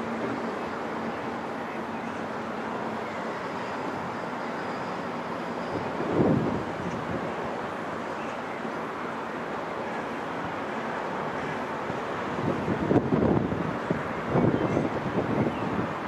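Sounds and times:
rushing road noise: 0.0 - 16.0
wind on microphone: 5.9 - 7.3, 12.3 - 16.0.

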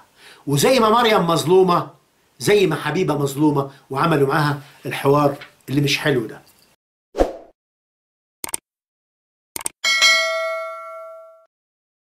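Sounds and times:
sharp clicks: 8.4 - 8.6, 9.6 - 9.8
bell ding: 9.8 - 11.5.

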